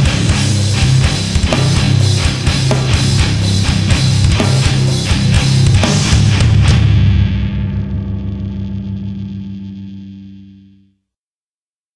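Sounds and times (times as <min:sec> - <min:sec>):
distorted electric guitar chord: 0:00.0 - 0:10.9.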